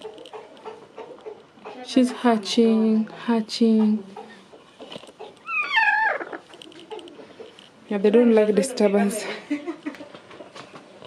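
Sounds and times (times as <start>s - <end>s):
hen wavering call: 5.4s - 6.4s.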